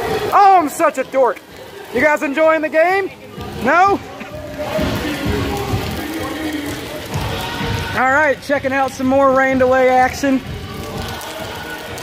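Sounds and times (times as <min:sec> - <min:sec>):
faint music: 0:00.0 - 0:12.0
heavy rain hissing: 0:00.0 - 0:12.0
indistinct voices: 0:00.0 - 0:12.0.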